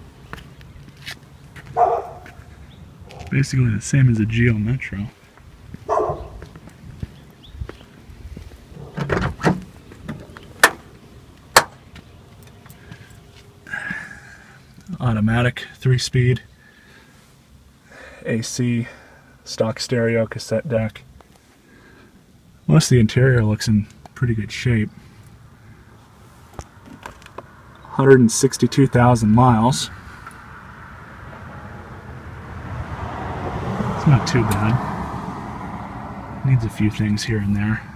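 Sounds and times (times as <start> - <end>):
car door clunk: 8.8 - 10.9, 11.5 - 11.8
car door latch clicks: 8.9 - 10.8.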